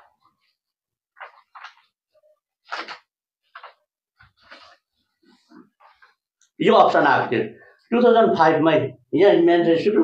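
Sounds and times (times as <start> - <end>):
paper sheets rustling: 0.0 - 6.2.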